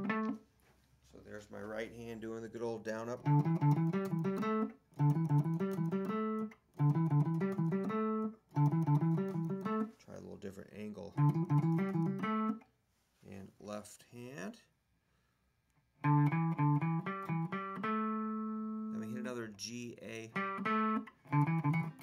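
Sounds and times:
electric guitar lick: 0.0s - 0.4s, 3.2s - 9.9s, 11.1s - 12.6s, 16.0s - 22.0s.

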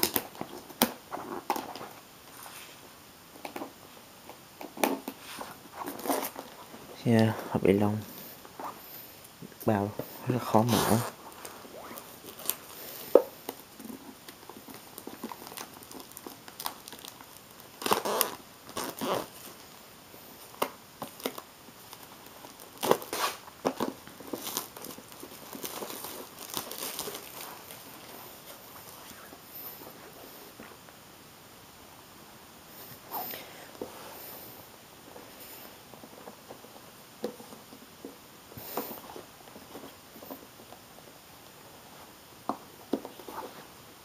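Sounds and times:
plastic wrap crinkling: 0.0s - 2.4s, 4.6s - 7.7s, 10.6s - 19.8s, 20.4s - 30.6s.

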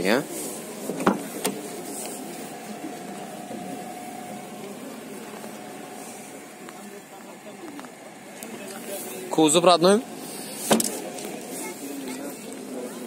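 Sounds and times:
steady background hum: 0.0s - 13.0s
car door latch clicks: 10.7s - 11.0s.

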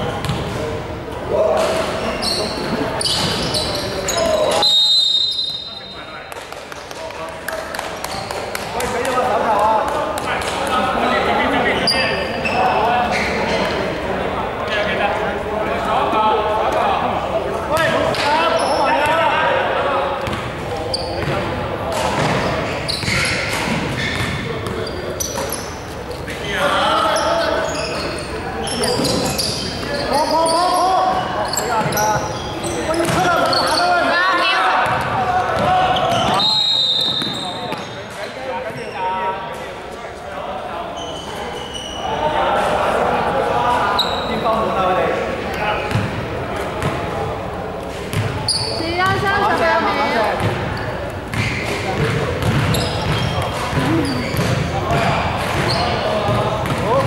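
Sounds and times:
players calling out: 40.8s - 57.0s
basketball bouncing on hardwood: 51.3s - 55.0s.

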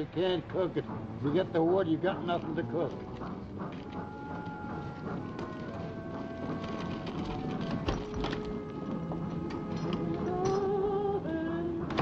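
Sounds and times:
background music of held notes: 0.0s - 12.0s
clicking footsteps: 0.5s - 11.0s.

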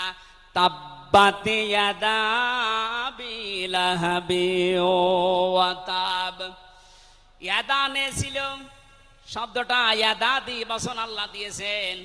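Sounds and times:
man chanting: 0.0s - 6.7s, 7.4s - 12.0s.

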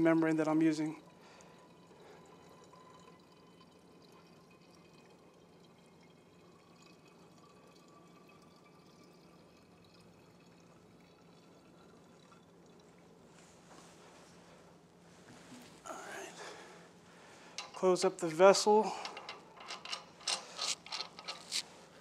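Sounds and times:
wine trickling: 0.0s - 22.0s
low room hum: 10.1s - 22.0s.

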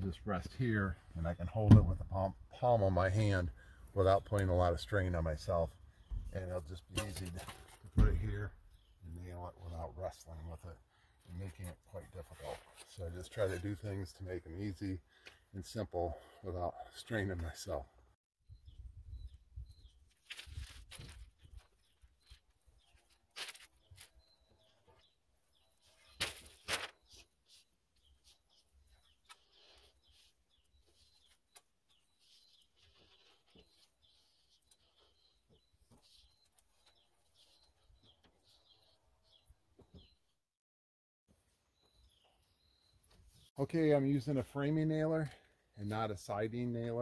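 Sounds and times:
faint bird chirps: 21.4s - 40.3s, 41.7s - 44.2s.

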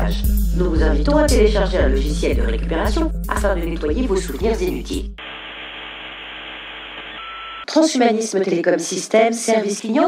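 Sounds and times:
electronic static hiss: 5.2s - 7.6s
low hum: 5.2s - 7.6s.

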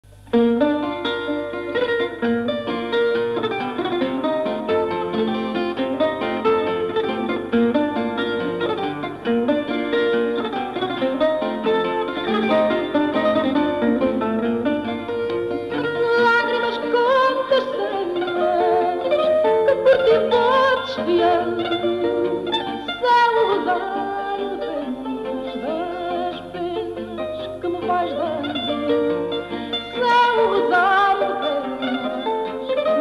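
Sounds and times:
classical guitar accompaniment: 0.0s - 33.0s
plucked guitar melody: 0.0s - 33.0s.

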